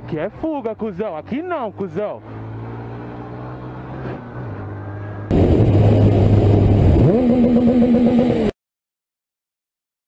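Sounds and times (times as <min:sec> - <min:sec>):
motorcycle engine running: 0:05.3 - 0:08.5.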